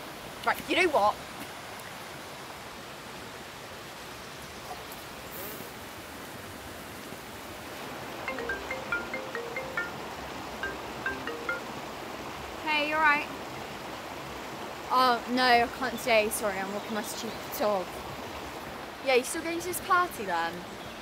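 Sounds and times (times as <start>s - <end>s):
rushing stream: 0.0s - 21.0s
mobile phone ringtone: 8.3s - 11.8s.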